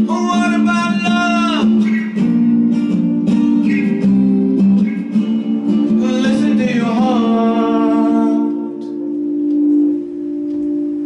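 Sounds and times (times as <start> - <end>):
steady ringing tone: 5.0 - 11.0.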